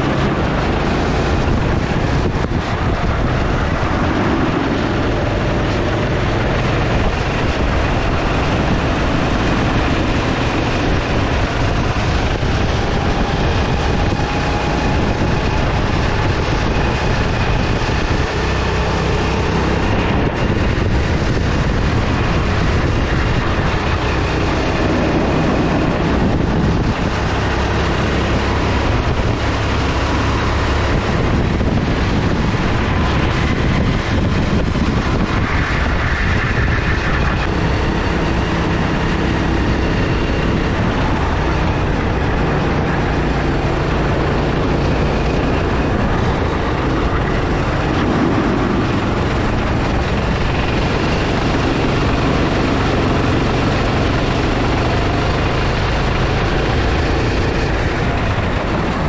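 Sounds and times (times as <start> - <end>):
go-kart engine running hard: 0.0 - 59.0
wind noise on microphone: 0.0 - 59.0.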